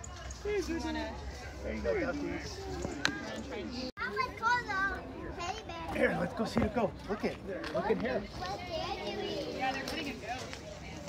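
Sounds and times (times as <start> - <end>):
young children's voices: 4.0 - 5.9, 8.4 - 9.6.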